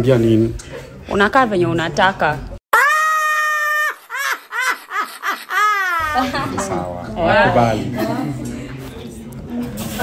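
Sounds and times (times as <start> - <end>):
short shrieking cries: 2.7 - 4.4
elderly woman screaming: 2.7 - 4.8.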